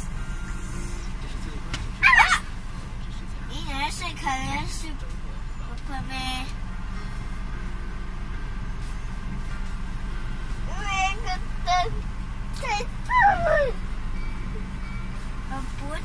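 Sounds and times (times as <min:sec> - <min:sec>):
car cabin rumble while driving: 0:00.0 - 0:16.0
child squealing: 0:02.0 - 0:02.5, 0:13.1 - 0:13.8.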